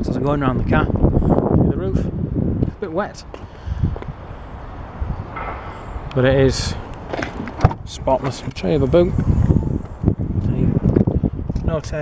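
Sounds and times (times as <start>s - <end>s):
low rumble: 8.0s - 11.3s.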